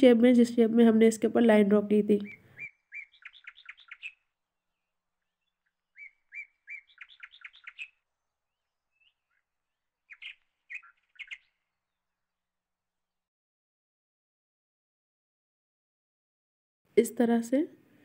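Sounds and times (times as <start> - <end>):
faint bird chirping: 2.1 - 12.4.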